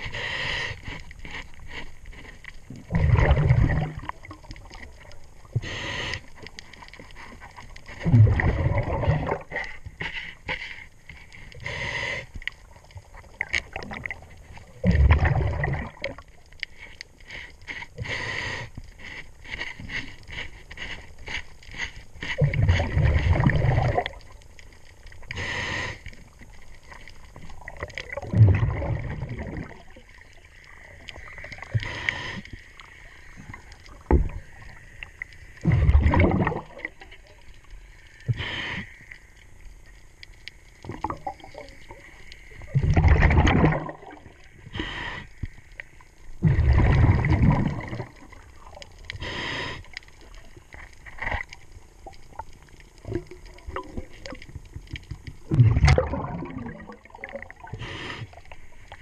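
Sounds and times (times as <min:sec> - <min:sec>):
diver breathing through regulator: 0:00.0 - 0:02.2, 0:05.5 - 0:07.5, 0:08.3 - 0:12.5, 0:16.7 - 0:23.0, 0:25.3 - 0:26.2, 0:31.7 - 0:33.4, 0:38.1 - 0:39.2, 0:44.6 - 0:45.6, 0:49.1 - 0:50.0, 0:57.7 - 0:58.7
exhaust bubbles rushing: 0:02.9 - 0:04.4, 0:08.0 - 0:09.5, 0:14.8 - 0:16.2, 0:22.4 - 0:24.2, 0:27.6 - 0:29.8, 0:35.6 - 0:36.9, 0:42.7 - 0:44.3, 0:46.4 - 0:48.2, 0:55.5 - 0:57.6.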